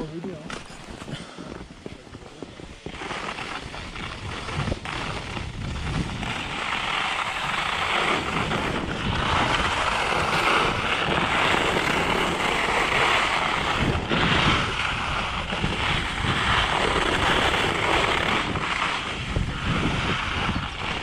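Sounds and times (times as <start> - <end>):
skis scraping on snow: 0.0 - 21.0
wind rumbling on microphone: 0.0 - 21.0.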